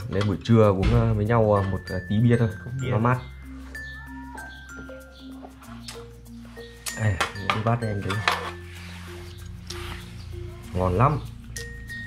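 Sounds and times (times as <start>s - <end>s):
music of held notes: 0.0s - 12.0s.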